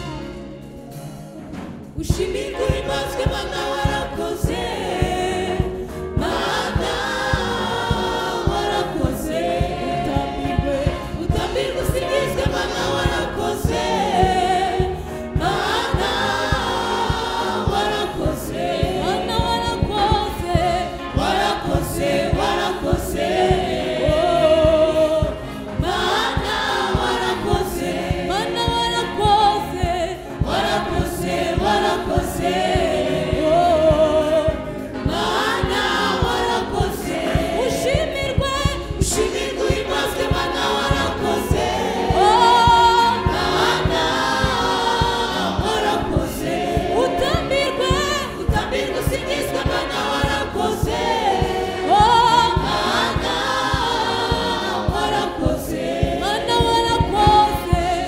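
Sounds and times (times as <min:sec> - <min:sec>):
women's choir singing gospel: 0:00.0 - 0:00.6, 0:01.6 - 0:58.0
steady low beat: 0:00.0 - 0:58.0.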